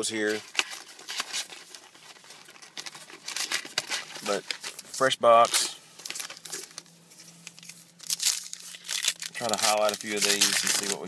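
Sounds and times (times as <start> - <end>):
plastic shrink wrap crinkling: 0.0 - 11.0.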